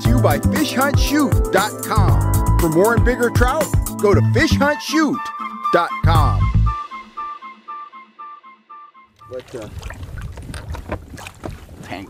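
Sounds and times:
wind rumbling on microphone: 9.3 - 12.0.

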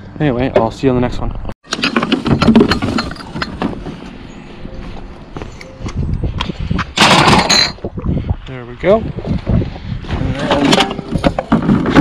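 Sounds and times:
plastic bottles rustling and clattering: 1.7 - 4.2, 10.2 - 12.0.

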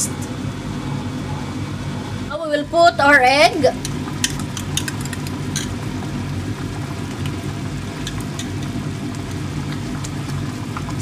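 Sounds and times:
steady low hum: 0.0 - 11.0
soup boiling with bubble pops: 3.7 - 11.0.

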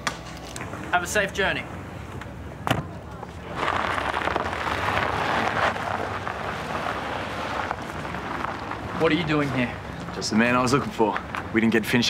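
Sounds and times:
car driving off: 1.6 - 12.0.

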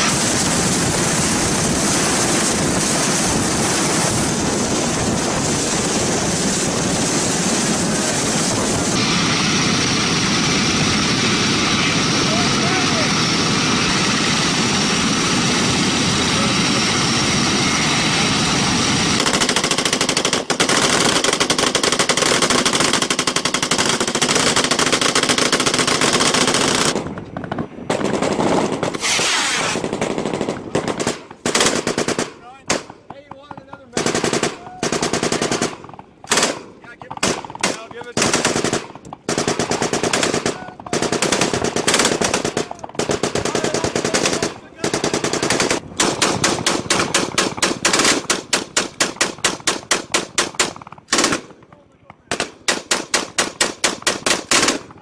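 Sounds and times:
machine-gun fire: 0.0 - 9.0, 19.1 - 55.0
loud steady noise: 0.0 - 51.4.

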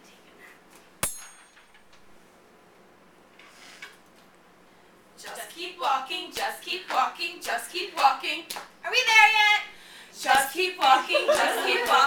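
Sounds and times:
triangle strike ringing: 1.0 - 1.7.

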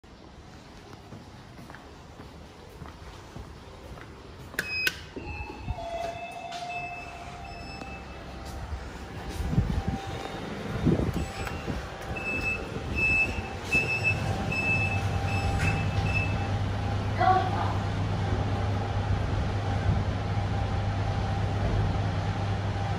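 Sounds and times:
lift motor humming: 4.5 - 17.2
high beeps: 4.6 - 8.4, 9.8 - 16.5
short electronic beeps: 4.6 - 8.4, 11.1 - 16.5.

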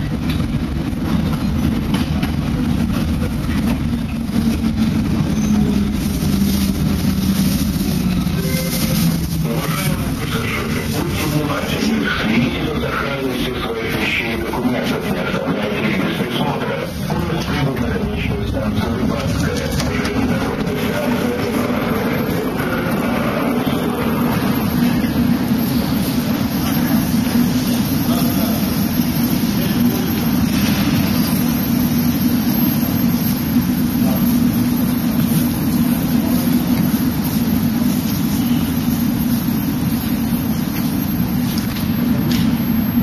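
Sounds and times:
low rumble and hum: 0.0 - 43.0
passengers' voices: 0.0 - 43.0.

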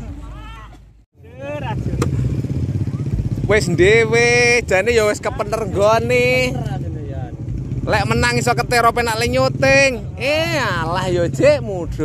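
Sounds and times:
motorcycle engine running: 1.2 - 12.0.

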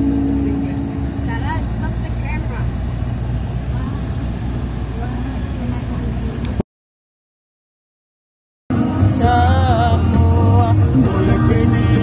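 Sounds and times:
van driving rumble inside cabin: 0.0 - 6.6, 8.7 - 12.0.

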